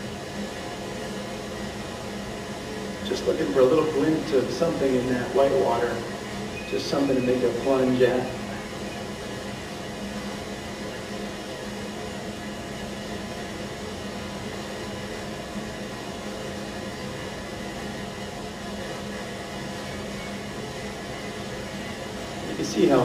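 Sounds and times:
constant low hum: 0.0s - 23.0s.

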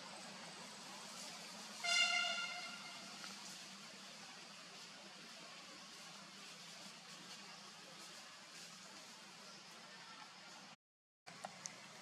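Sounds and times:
vehicle horn honk: 1.8s - 3.1s.

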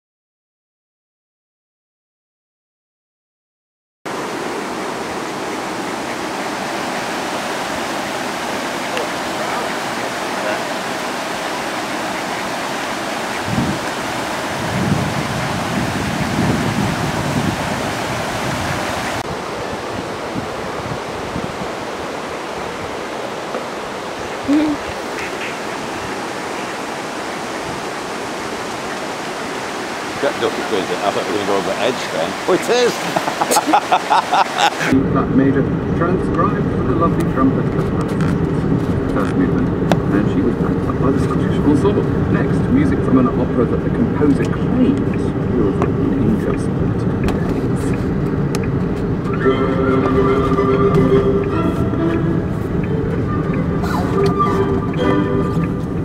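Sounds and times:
low rumbles: 34.9s - 56.0s.

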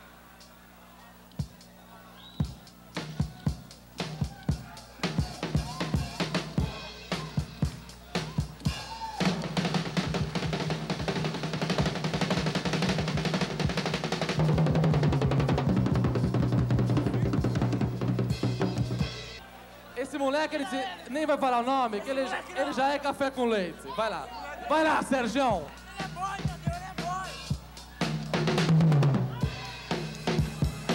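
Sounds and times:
drum kit playing: 1.4s - 1.7s, 2.4s - 19.4s, 25.4s - 30.9s.

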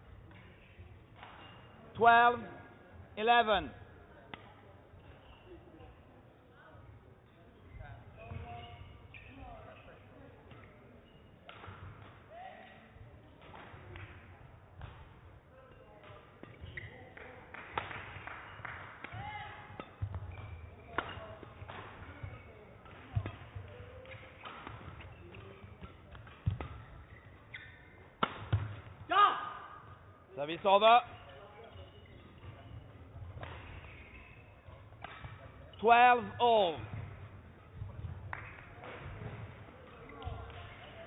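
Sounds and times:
shoes squeaking on court: 7.3s - 11.9s, 15.7s - 17.2s, 19.7s - 29.1s, 31.0s - 35.8s
shuttlecock struck with rackets: 28.2s - 28.8s.

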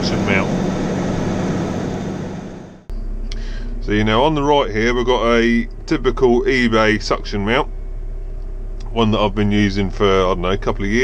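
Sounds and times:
diesel engine hum: 0.0s - 11.0s.

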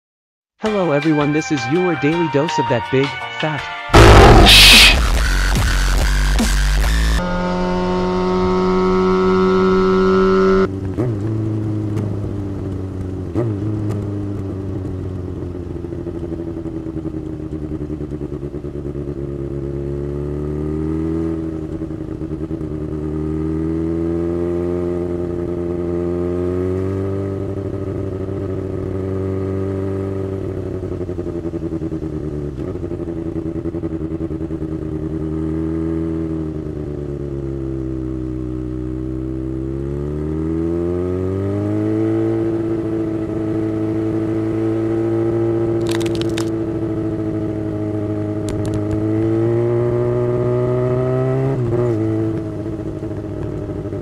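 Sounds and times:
motorcycle engine revving: 4.0s - 54.0s.

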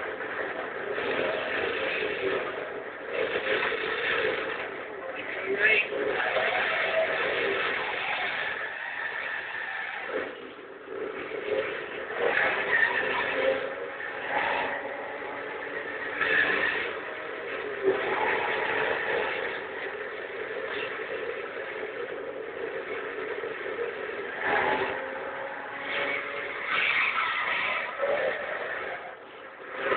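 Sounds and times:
car engines revving: 0.0s - 29.9s
high-pitched squeals: 0.0s - 29.9s.

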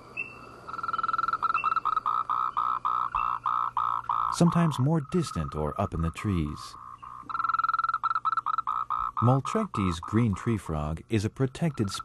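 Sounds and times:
loud pulsating frog call: 0.0s - 6.1s, 6.7s - 10.8s, 11.5s - 12.0s
faint frog calls: 0.0s - 12.0s
short high frog chirps: 0.2s - 5.6s, 6.7s - 10.2s.

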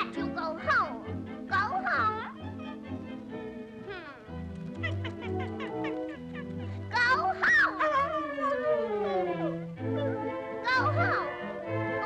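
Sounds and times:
orchestral music: 0.0s - 12.0s
cartoon puppy whimpering howl: 4.8s - 11.4s.

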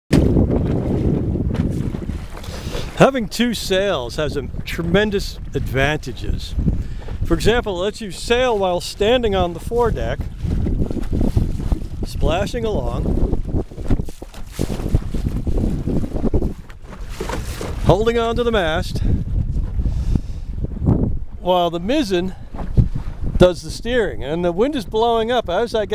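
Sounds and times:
water splashing against boat bow: 0.1s - 24.9s
wind buffeting microphone: 0.1s - 25.9s.

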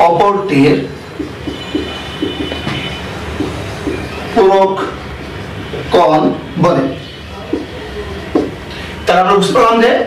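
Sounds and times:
marker writing on whiteboard: 0.6s - 8.8s.

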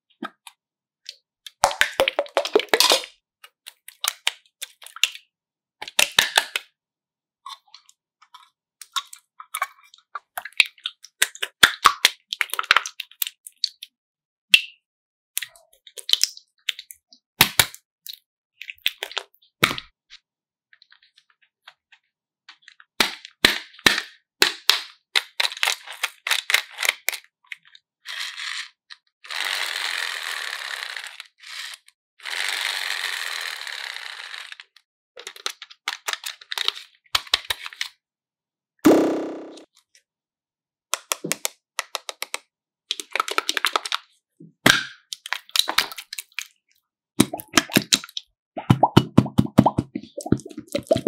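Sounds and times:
plastic toy clicks and snaps: 41.0s - 42.4s
slime squishing: 47.2s - 51.0s.

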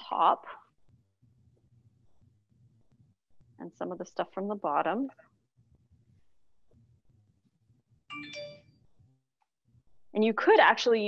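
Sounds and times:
bright ringing tone: 8.1s - 9.0s.

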